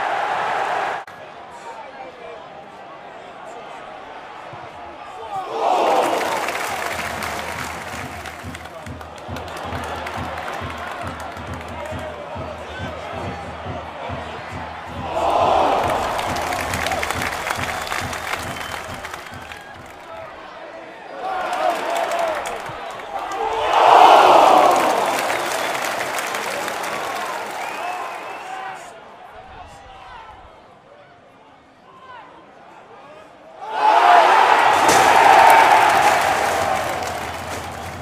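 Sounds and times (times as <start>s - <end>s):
stadium crowd roaring: 0.0s - 30.6s, 32.1s - 38.0s.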